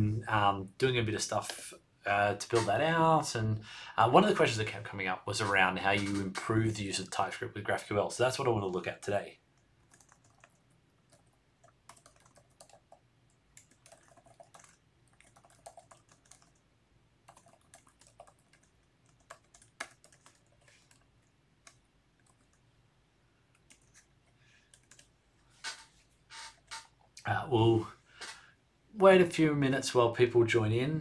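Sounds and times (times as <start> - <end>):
computer keyboard typing: 9.6 - 16.6, 17.2 - 22.6, 23.5 - 27.1.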